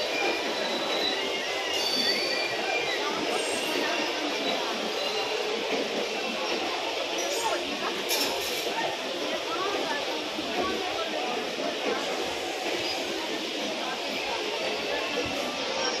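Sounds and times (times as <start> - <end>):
many voices chattering: 0.0 - 16.0
passenger coaches rolling past: 0.0 - 16.0.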